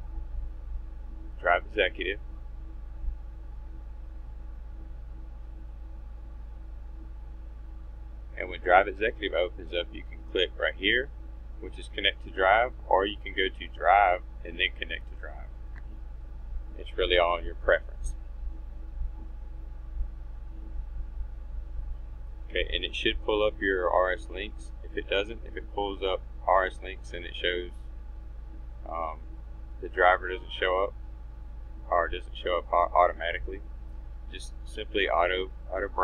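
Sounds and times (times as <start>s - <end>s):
low hum: 0.0s - 36.0s.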